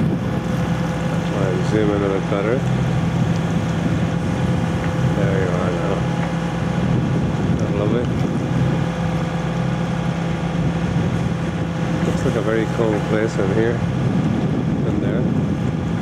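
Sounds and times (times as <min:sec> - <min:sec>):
boat engine droning: 0:00.0 - 0:16.0.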